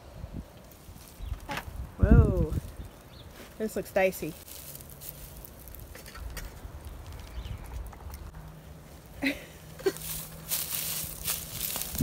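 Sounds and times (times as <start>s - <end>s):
wind rumble on microphone: 0.0s - 3.3s, 11.3s - 12.0s.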